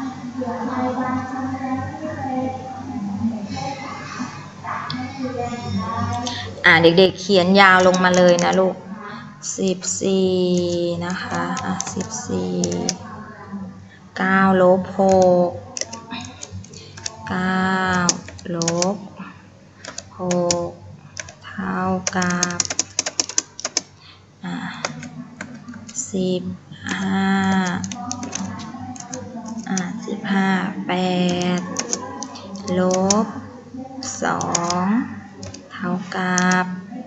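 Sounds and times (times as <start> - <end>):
computer keyboard keys clicking: 7.8 - 8.6, 10.5 - 13.0, 15.0 - 19.0, 19.8 - 20.6, 21.2 - 21.4, 22.0 - 23.9, 24.8 - 26.1, 26.9 - 30.0, 31.3 - 33.2, 34.0 - 34.8, 35.4 - 35.6, 36.4 - 36.6.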